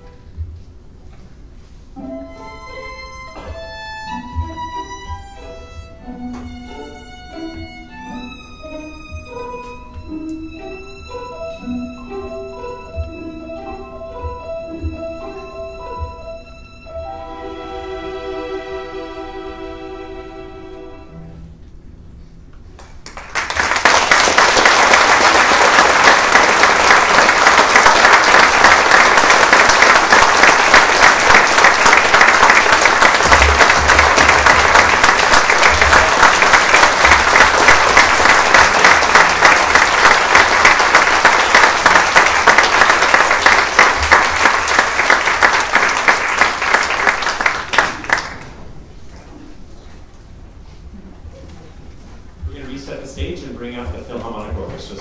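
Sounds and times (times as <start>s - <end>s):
audience applauding: 22.8s - 48.7s.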